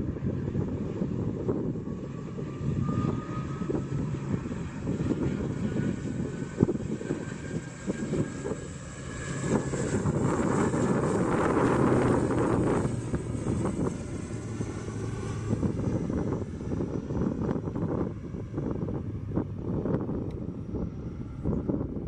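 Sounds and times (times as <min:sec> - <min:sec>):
turboprop engines running up: 0:00.0 - 0:22.0.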